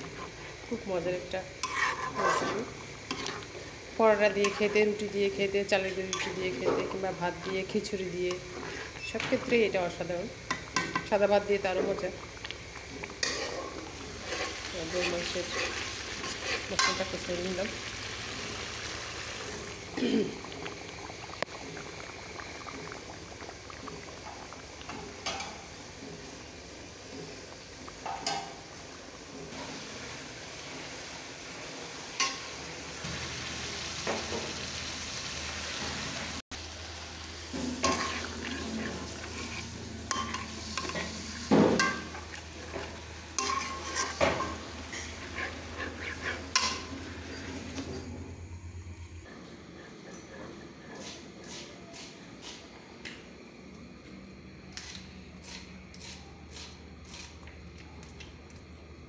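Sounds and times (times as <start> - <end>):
food sizzling in oil: 0.0 - 48.5
metal spatula scraping pan: 1.6 - 3.6, 4.4 - 5.0, 13.2 - 17.4, 37.6 - 42.0, 43.4 - 48.0.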